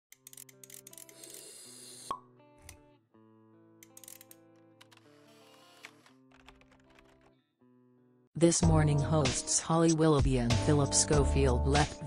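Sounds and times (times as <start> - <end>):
soft background music: 0.1 - 7.2, 8.4 - 12.0.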